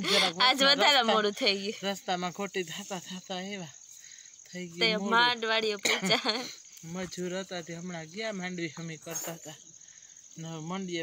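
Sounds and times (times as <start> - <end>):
woman speaking: 0.0 - 1.8, 4.8 - 6.5
insects trilling: 0.0 - 11.0.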